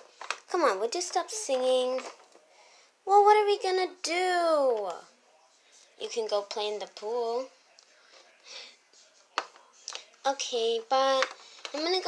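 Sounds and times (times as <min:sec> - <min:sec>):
plastic toys rustling: 0:00.0 - 0:02.5, 0:09.4 - 0:12.0.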